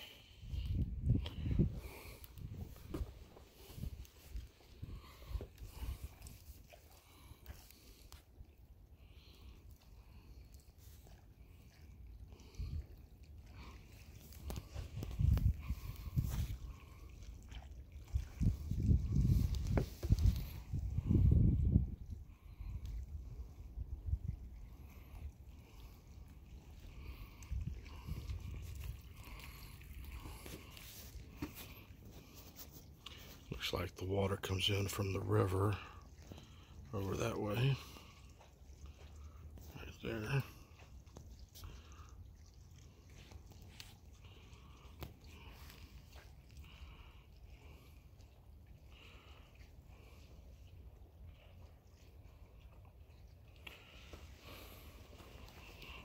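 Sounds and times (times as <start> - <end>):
wind buffeting microphone: 0.3 - 6.5, 14.5 - 25.2, 27.0 - 30.4.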